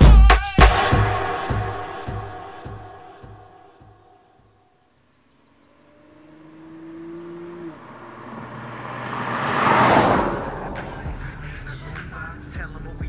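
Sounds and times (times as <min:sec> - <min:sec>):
tyre and road noise: 0:04.9 - 0:12.6
car passing by: 0:05.3 - 0:12.5.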